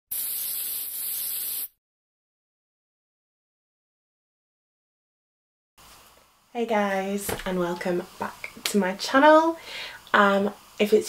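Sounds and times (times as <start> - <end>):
bright hiss: 0.1 - 1.8.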